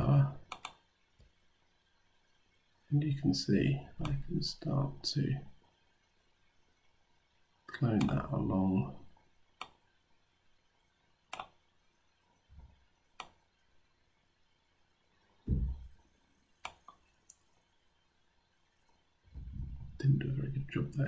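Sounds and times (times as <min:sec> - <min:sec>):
computer mouse clicking: 0:00.5 - 0:01.3, 0:09.6 - 0:09.8, 0:11.3 - 0:11.6, 0:13.2 - 0:13.4, 0:16.6 - 0:17.5
low thump: 0:15.5 - 0:15.9, 0:19.3 - 0:20.0.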